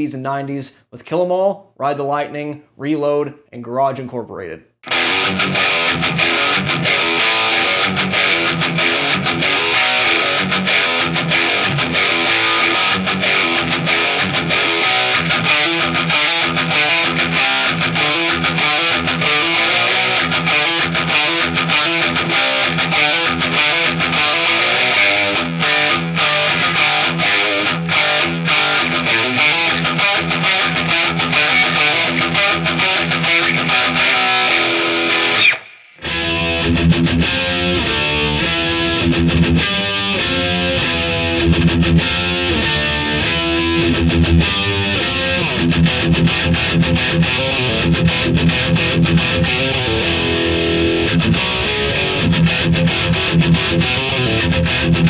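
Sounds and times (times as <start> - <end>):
distorted electric guitar riff: 4.8 - 55.0.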